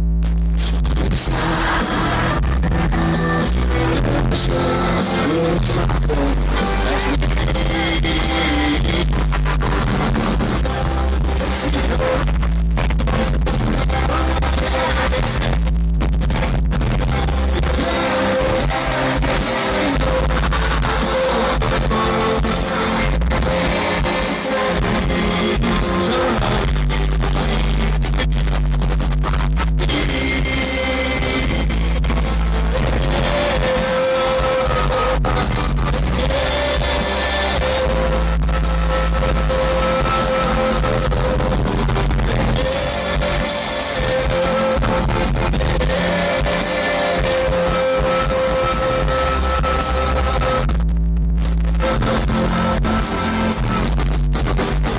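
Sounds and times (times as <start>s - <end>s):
live rock band playing: 1.1s - 12.2s, 16.8s - 28.1s, 29.9s - 50.6s.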